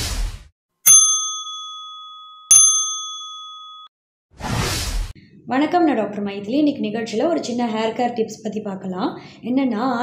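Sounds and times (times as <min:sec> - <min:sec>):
bell-like ding: 0:00.9 - 0:03.9.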